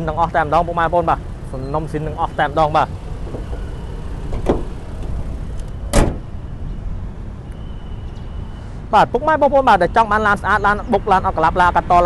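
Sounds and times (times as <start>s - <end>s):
single thump: 4.3s - 4.8s, 5.9s - 6.3s.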